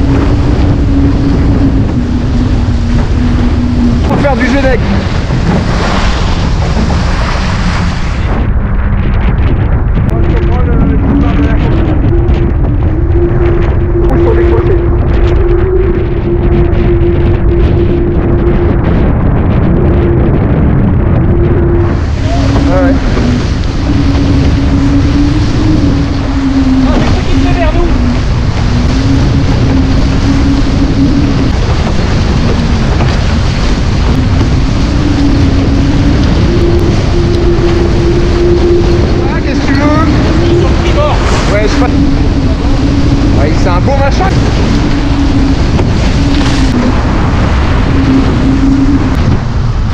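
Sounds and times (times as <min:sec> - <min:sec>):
steady hum changing pitch: 0:00.0 - 0:09.1, 0:09.8 - 0:49.9
water rushing past hull: 0:00.0 - 0:49.9
wind buffeting microphone: 0:00.0 - 0:49.9.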